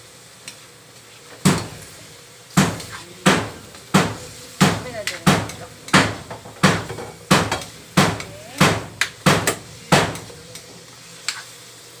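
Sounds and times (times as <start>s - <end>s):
meat frying in oil: 0.0s - 12.0s.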